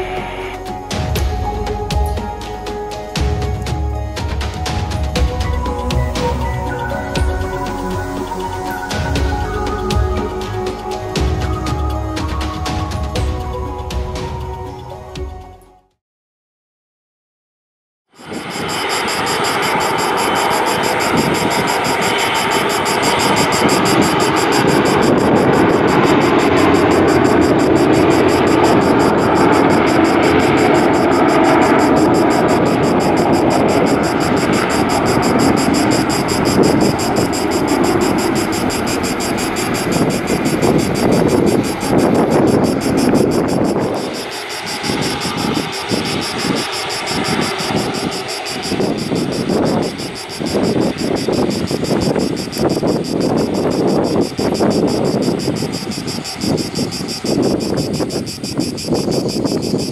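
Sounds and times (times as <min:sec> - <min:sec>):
jet engine roar with whine: 0:00.0 - 0:13.2, 0:18.2 - 0:59.9.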